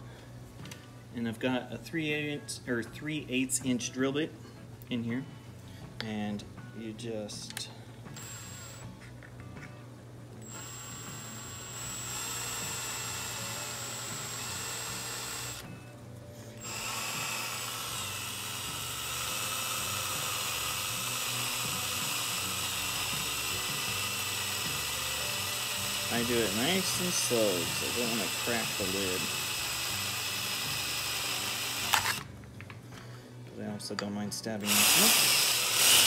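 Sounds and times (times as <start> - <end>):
drill boring through plastic: 8.2 - 8.8, 10.4 - 15.6, 16.6 - 32.2, 34.6 - 36.0.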